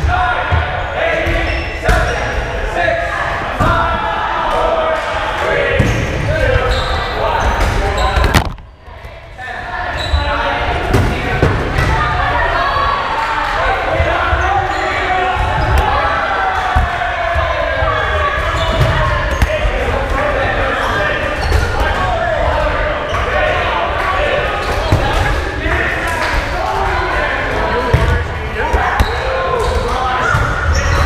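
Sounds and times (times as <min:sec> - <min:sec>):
players calling out: 0:00.0 - 0:31.0.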